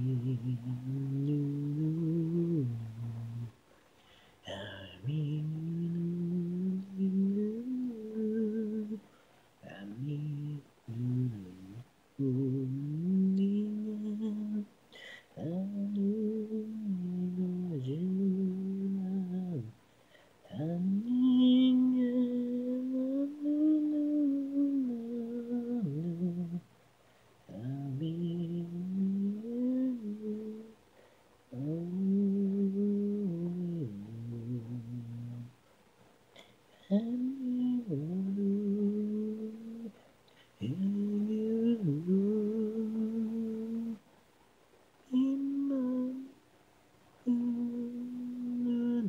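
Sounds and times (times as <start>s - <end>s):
person humming a slow melody: 0.0s - 19.8s, 20.4s - 26.7s, 27.5s - 35.6s, 36.4s - 44.0s, 45.0s - 46.4s, 47.2s - 49.0s.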